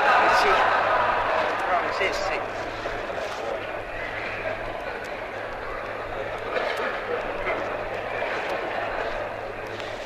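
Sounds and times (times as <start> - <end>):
murmur of voices: 0.0 - 10.0
faint clicks: 3.2 - 10.0.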